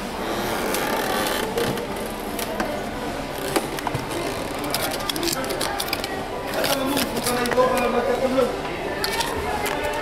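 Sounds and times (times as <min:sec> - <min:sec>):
shop background noise: 0:00.0 - 0:10.0.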